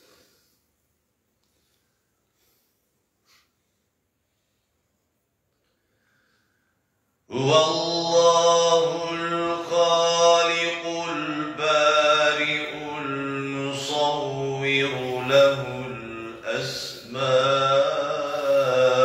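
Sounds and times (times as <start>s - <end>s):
man chanting: 7.3s - 19.0s.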